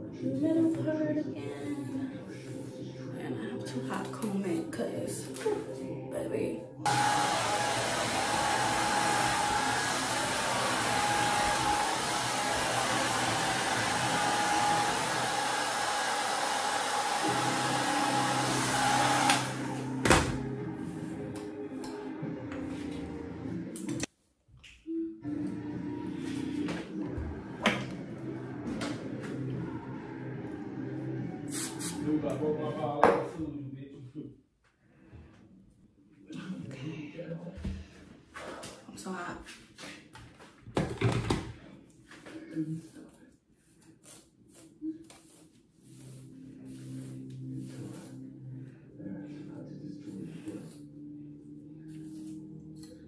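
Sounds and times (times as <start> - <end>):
hair dryer running: 6.8 - 20.5.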